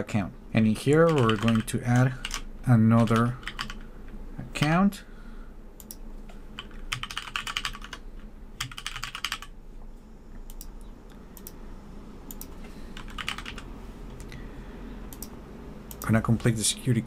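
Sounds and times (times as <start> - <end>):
computer keyboard typing: 0.8 - 3.8, 6.6 - 8.0, 8.6 - 9.5, 12.3 - 13.7.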